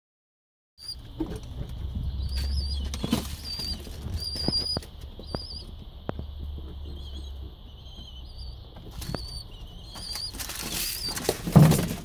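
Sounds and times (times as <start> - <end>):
high wavering squeaks: 2.2 - 5.7.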